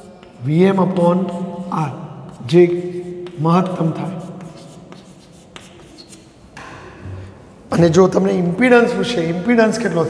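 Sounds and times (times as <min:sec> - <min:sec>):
chalk scratching on blackboard: 0:00.0 - 0:06.4
chalk tap: 0:00.0 - 0:06.7.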